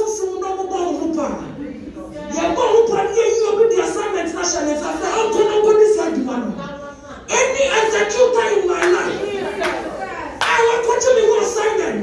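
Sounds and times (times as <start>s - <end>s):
sharp hand clap: 8.8s - 10.7s
woman praying aloud: 8.8s - 11.8s.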